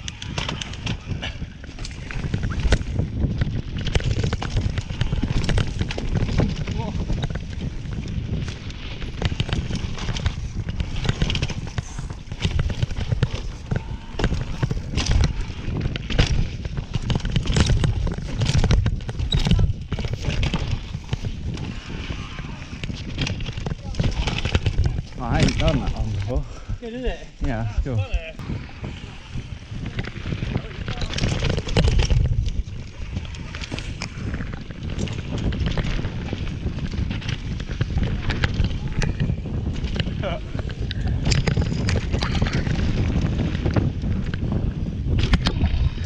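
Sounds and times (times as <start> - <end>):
bike clattering over bumps: 0.0 - 27.0, 28.8 - 46.0
wind buffeting microphone: 0.0 - 46.0.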